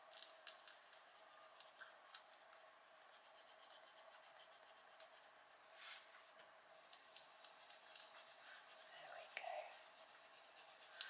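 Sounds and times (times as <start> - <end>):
pencil scratching on paper: 0.7 - 5.6, 7.2 - 11.0.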